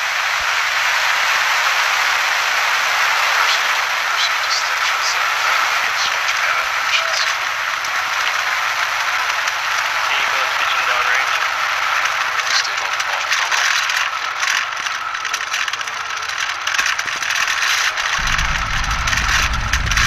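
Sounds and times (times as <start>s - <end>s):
onlookers talking: 2.8s - 8.6s, 9.8s - 17.0s
deep rocket engine rumble: 18.1s - 20.0s
mid-pitched hiss: 18.2s - 20.0s.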